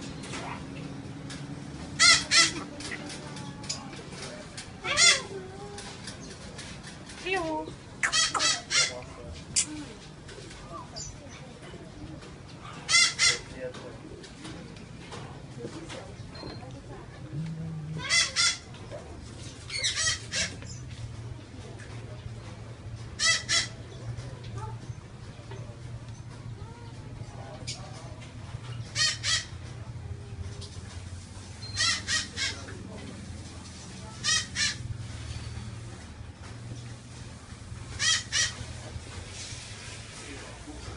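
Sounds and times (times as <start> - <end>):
background chatter: 0.0 - 40.9
parrot squawking: 2.0 - 2.6, 4.8 - 5.3, 8.0 - 9.0, 12.9 - 13.5, 18.0 - 18.7, 19.7 - 20.6, 23.2 - 23.8, 28.9 - 29.6, 31.7 - 32.7, 34.2 - 34.8, 38.0 - 38.6.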